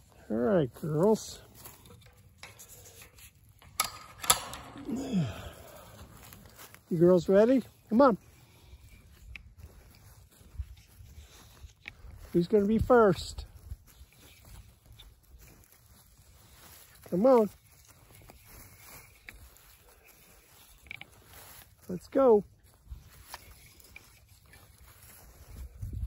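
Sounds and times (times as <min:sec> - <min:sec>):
metal gate hook clicking: 0:03.6 - 0:05.0.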